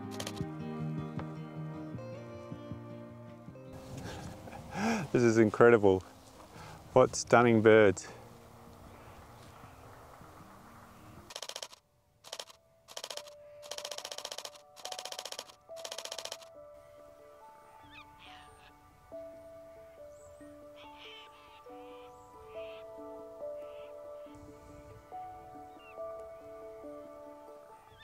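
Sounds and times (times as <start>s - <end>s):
soft background music: 0.0s - 11.3s, 12.4s - 28.0s
camera shutter clicks: 0.1s - 0.4s, 11.3s - 16.5s.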